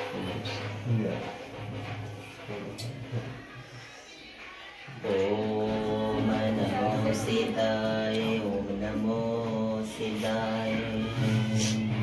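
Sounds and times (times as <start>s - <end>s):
voices chanting a mantra: 2.6s - 12.0s.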